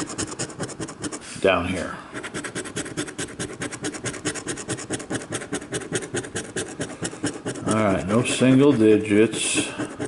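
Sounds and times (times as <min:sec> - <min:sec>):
coin scratching a lottery ticket: 0:00.0 - 0:01.3, 0:02.2 - 0:10.0.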